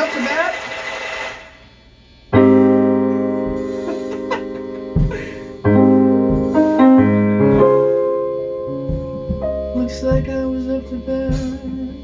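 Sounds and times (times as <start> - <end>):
electronic keyboard piano chord: 2.3 - 12.0.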